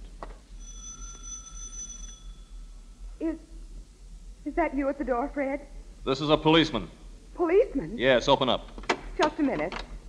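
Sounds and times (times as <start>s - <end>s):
doorbell ringing: 0.6s - 2.6s
woman speaking: 3.2s - 3.5s, 4.5s - 5.7s, 7.4s - 8.0s, 9.2s - 9.8s.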